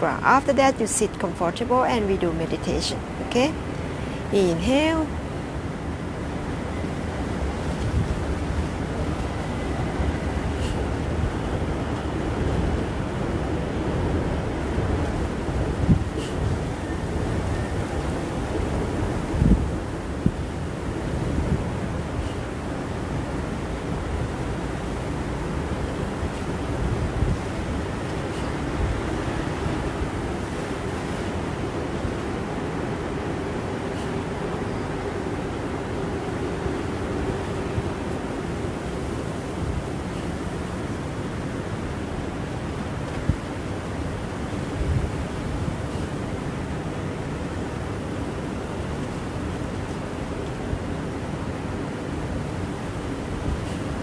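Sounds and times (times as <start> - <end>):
wind noise on microphone: 2.4 - 34.7, 35.4 - 54.0
wind buffeting thumps: 6.5 - 32.4, 36.8 - 45.9.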